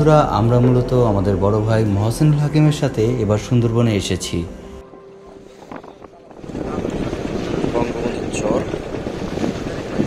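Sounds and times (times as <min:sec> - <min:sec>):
rushing water: 0:05.1 - 0:10.0
wind on microphone: 0:05.2 - 0:10.0.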